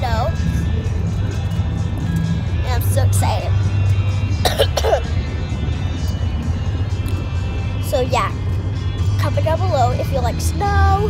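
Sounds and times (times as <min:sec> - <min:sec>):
music playing: 0:00.0 - 0:11.0
road rumble inside car: 0:00.0 - 0:11.0.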